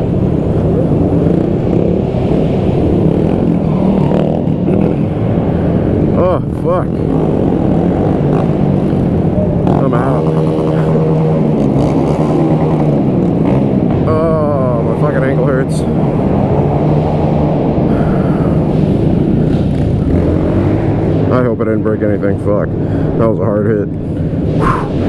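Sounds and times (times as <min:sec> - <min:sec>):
motorcycle engines running hard: 0:00.0 - 0:25.0.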